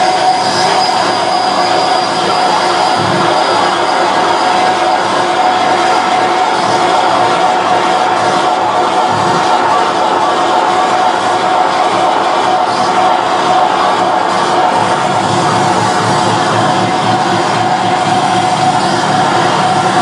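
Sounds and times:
distorted noise music: 0:00.0 - 0:20.0
steady tone: 0:00.0 - 0:20.0.

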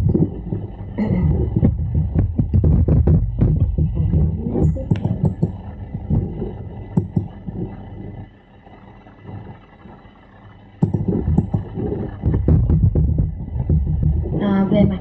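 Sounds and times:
crackling rumble on call audio: 0:00.0 - 0:15.0.

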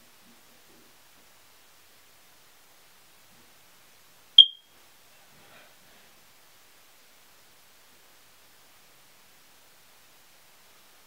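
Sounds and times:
short high-pitched electronic beep: 0:04.4 - 0:04.6.

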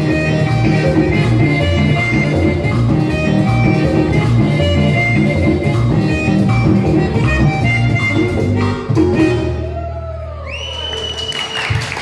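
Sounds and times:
band with accordion and bass guitar: 0:00.0 - 0:09.8
long whistle: 0:10.2 - 0:12.0
audience applauding: 0:10.4 - 0:12.0.

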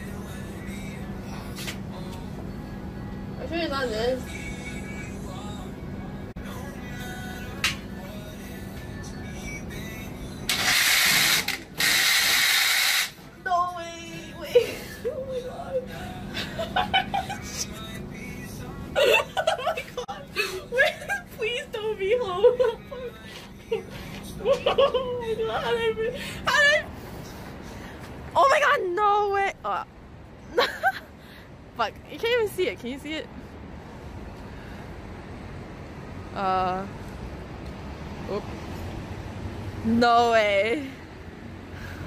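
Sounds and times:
person crying out: 0:19.0 - 0:21.3, 0:24.4 - 0:26.9.

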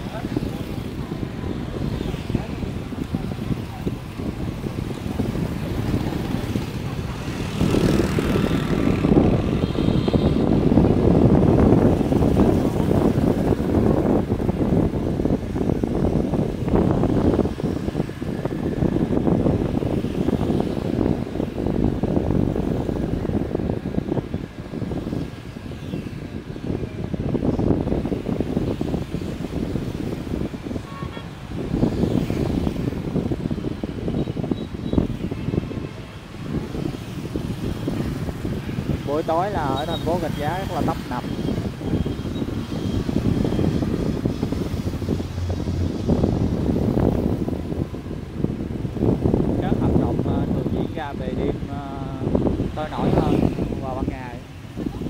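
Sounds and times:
motorbike traffic: 0:00.0 - 0:55.0.

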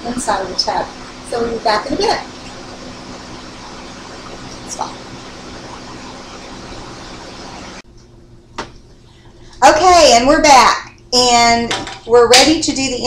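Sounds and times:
room noise hiss: 0:00.0 - 0:13.0.

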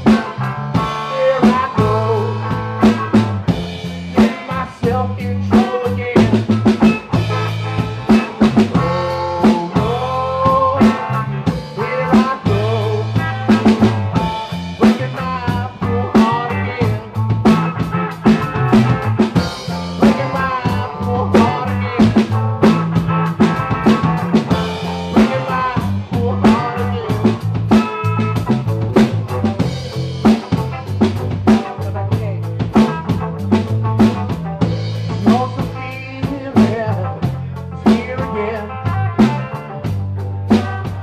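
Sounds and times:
drum beat with snare hits: 0:00.0 - 0:38.4
electric guitar lines: 0:00.0 - 0:41.0
sustained bass guitar: 0:00.0 - 0:41.0.

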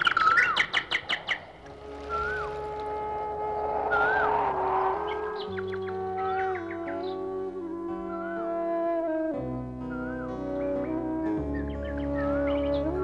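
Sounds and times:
bird chirping: 0:00.0 - 0:07.5, 0:09.9 - 0:13.0
swooping whistled bird calls: 0:00.0 - 0:08.6, 0:09.9 - 0:13.0
soft background music: 0:01.6 - 0:13.0.

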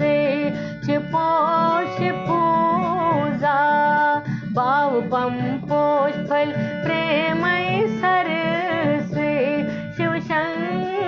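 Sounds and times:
instrumental accompaniment: 0:00.0 - 0:11.0
woman singing: 0:00.0 - 0:11.0.

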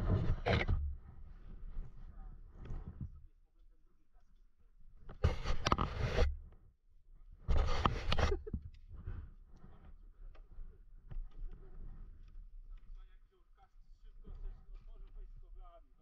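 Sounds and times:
rubbing on camera microphone: 0:00.0 - 0:03.3, 0:04.9 - 0:06.6, 0:07.4 - 0:16.0
faint rustles: 0:07.4 - 0:15.8.

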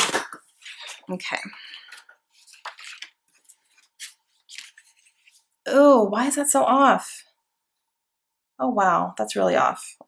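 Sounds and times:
paper rustling and scraping: 0:01.9 - 0:05.5.

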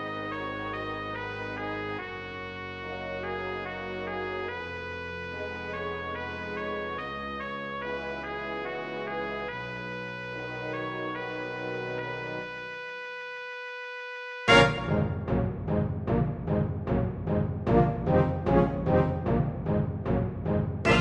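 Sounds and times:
wind orchestra sustained chords: 0:00.0 - 0:12.7, 0:14.5 - 0:21.0.

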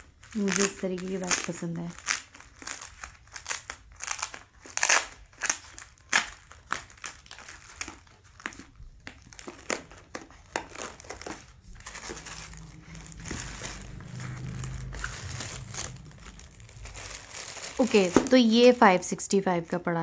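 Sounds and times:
foil and plastic wrapping crinkling: 0:00.0 - 0:19.0.

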